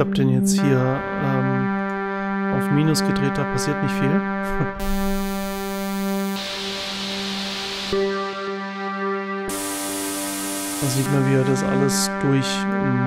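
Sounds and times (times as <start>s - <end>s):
synthesizer sustained chord: 0.6s - 13.0s
hissy noise layer: 6.3s - 8.6s, 9.5s - 12.0s.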